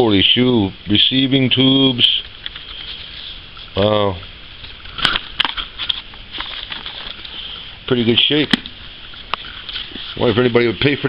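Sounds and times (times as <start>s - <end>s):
pages flipping: 4.9s - 7.6s.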